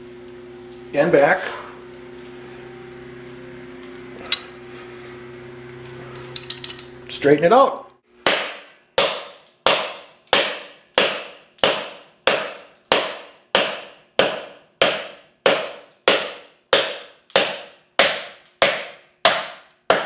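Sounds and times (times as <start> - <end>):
knife blade chopping into wood: 8.3 - 20.0.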